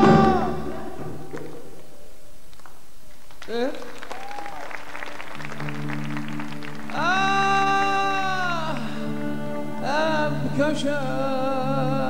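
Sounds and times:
audience applauding: 0:02.5 - 0:09.8
orchestra sustained low chord: 0:05.4 - 0:12.0.

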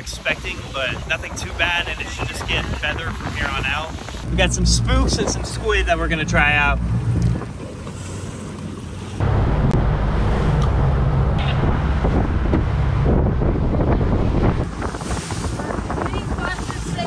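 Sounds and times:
steady low rumble: 0:00.0 - 0:17.0
water rushing along hull: 0:00.0 - 0:17.0
wind buffeting microphone: 0:00.0 - 0:17.0.

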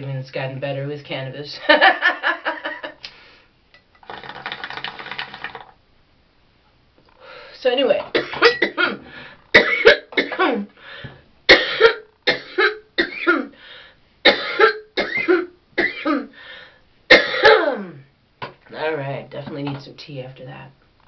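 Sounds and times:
woman coughing: 0:08.2 - 0:10.7, 0:11.5 - 0:13.5, 0:14.3 - 0:16.3, 0:17.1 - 0:18.0.

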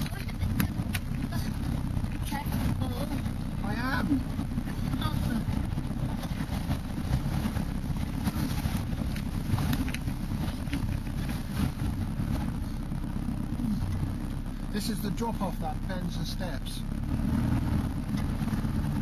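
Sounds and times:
vehicle engine rumbling: 0:00.0 - 0:19.0.

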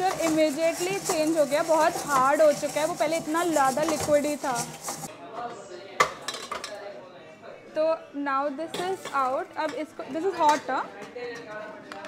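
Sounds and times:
metal mixer bowl clanking: 0:00.0 - 0:05.1, 0:08.7 - 0:09.8.

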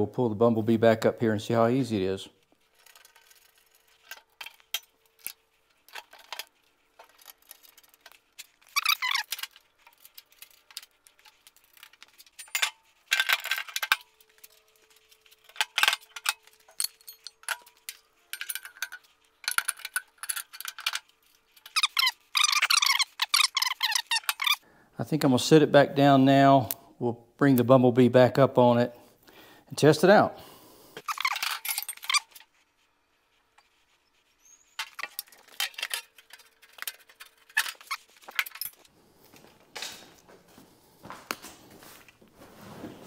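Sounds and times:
squeaky tool runs: 0:08.6 - 0:09.4, 0:21.6 - 0:24.6
metal tool clicks and clinks: 0:15.4 - 0:24.6.

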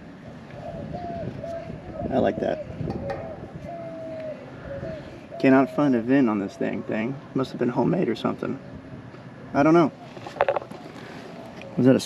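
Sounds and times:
dove cooing: 0:00.2 - 0:07.8.

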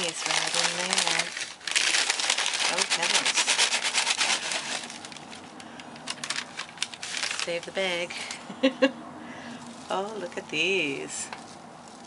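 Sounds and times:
paper bag rustling: 0:00.0 - 0:08.4, 0:09.6 - 0:10.7.

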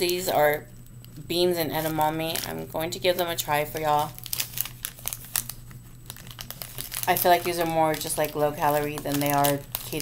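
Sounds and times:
plastic snack pouch crinkling: 0:01.7 - 0:10.0.

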